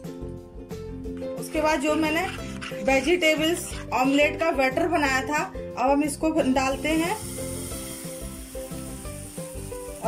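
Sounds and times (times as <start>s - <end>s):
batter sizzling in a frying pan: 6.4s - 10.0s.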